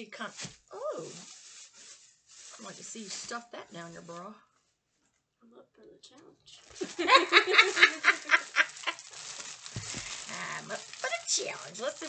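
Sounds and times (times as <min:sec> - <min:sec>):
woman laughing loudly: 0:06.8 - 0:09.1.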